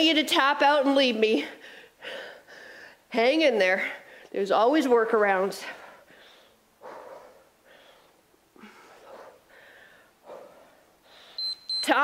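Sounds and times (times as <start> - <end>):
woman breathing with effort: 1.4 - 3.1, 5.6 - 11.5.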